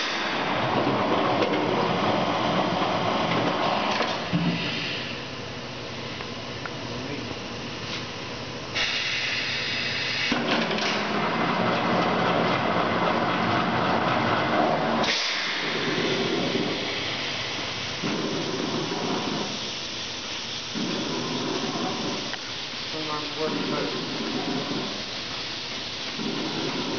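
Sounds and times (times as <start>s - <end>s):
steady machine noise: 0.0s - 26.9s
compressed air hissing: 4.2s - 5.3s, 8.7s - 11.2s, 14.9s - 26.9s.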